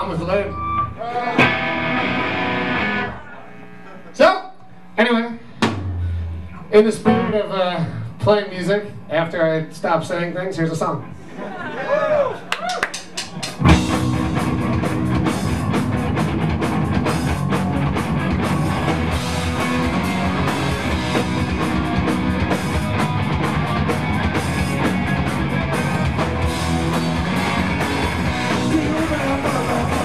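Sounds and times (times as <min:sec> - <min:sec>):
live rock band playing: 0:00.0 - 0:03.2, 0:05.6 - 0:07.7, 0:13.1 - 0:30.0.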